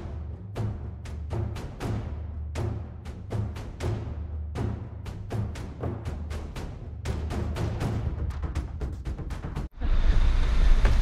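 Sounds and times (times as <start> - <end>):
background music with drums: 0.0 - 9.7.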